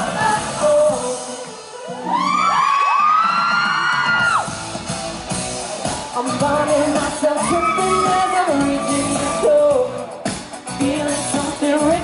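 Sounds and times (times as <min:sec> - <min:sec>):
group singing live: 0:00.0 - 0:02.1, 0:05.9 - 0:12.0
pop backing track: 0:00.0 - 0:12.0.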